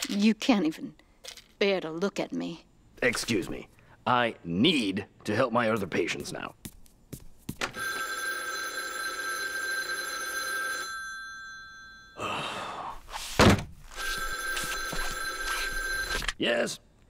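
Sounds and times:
telephone ringing: 7.7s - 12.2s, 13.9s - 16.4s
loud thump: 13.4s - 13.8s.

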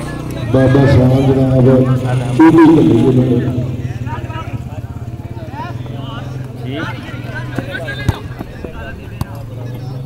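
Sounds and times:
people calling out: 0.0s - 4.7s.

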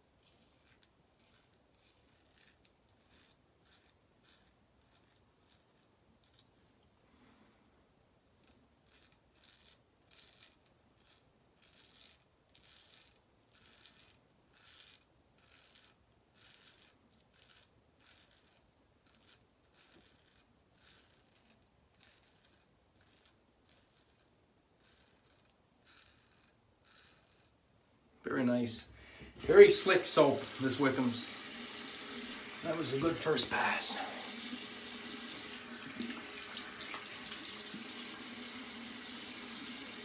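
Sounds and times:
straight razor scraping stubble: 0.1s - 6.5s, 8.4s - 27.6s.

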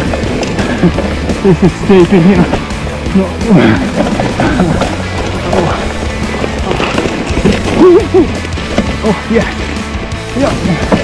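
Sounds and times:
melodic background music: 0.0s - 11.0s
mountain bike rattling on rocks: 0.0s - 11.0s.

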